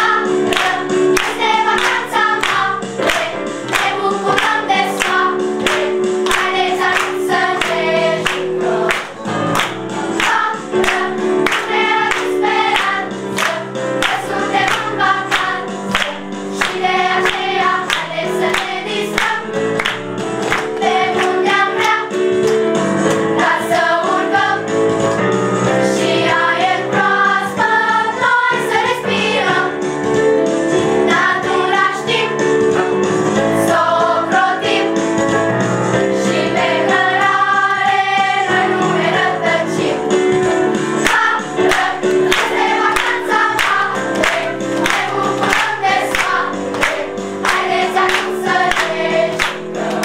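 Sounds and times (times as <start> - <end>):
instrumental backing music: 0.0 - 50.0
hand claps: 0.5 - 23.3, 41.0 - 50.0.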